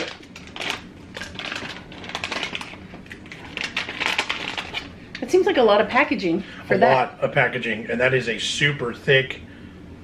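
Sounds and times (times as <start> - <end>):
plastic foil pouch crinkling: 0.0 - 4.9
pouch being torn: 0.0 - 4.9.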